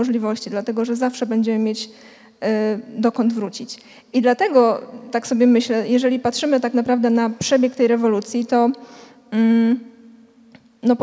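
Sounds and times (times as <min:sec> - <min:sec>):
woman humming hesitation sound: 0:09.3 - 0:09.9.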